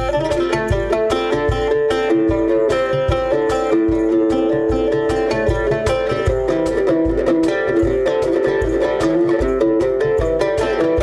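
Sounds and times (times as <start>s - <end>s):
oud plucked melody: 0.0s - 11.0s.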